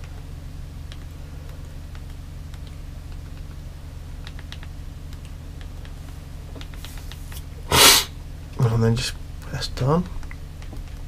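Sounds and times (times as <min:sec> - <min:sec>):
man sneezing: 0:07.7 - 0:08.1.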